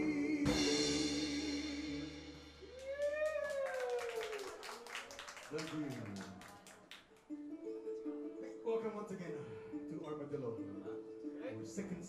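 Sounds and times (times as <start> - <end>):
ukulele picked notes: 7.3 - 12.0.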